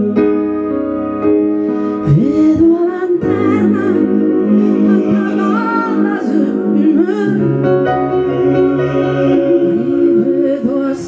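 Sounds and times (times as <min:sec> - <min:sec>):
piano and synthesizer chords: 0:00.0 - 0:11.0
woman singing: 0:02.0 - 0:07.7, 0:09.5 - 0:11.0
swooping synth glide: 0:03.6 - 0:11.0.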